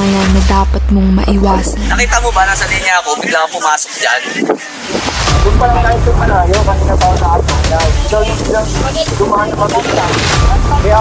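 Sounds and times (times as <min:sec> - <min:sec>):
man speaking: 0:01.9 - 0:11.0.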